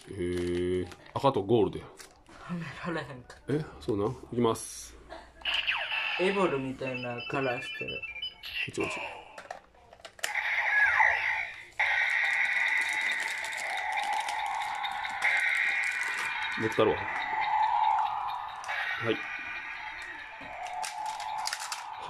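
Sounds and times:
toy electronic sound effects: 5.4s - 9.4s, 10.2s - 22.0s
looping standby tune: 10.6s - 22.0s.

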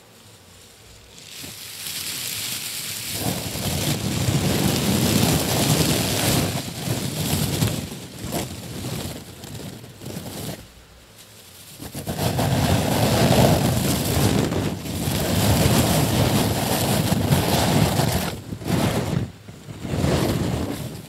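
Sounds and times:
shredded paper crackling rustle: 0.0s - 21.0s.

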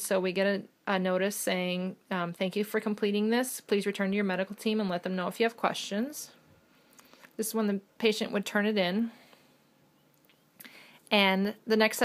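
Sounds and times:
woman inhaling briefly: 10.6s - 11.0s.

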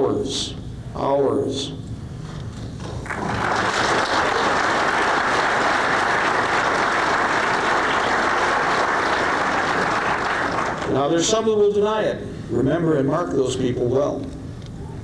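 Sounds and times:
audience applauding: 3.0s - 11.0s.

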